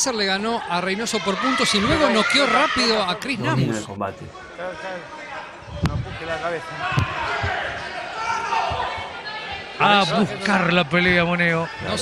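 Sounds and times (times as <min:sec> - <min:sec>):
background voices: 0:03.3 - 0:04.3.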